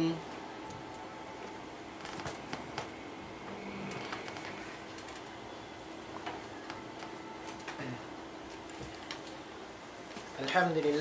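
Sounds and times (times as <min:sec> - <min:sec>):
low hum and hiss: 0:00.0 - 0:11.0
faint clicks and taps: 0:06.1 - 0:07.8.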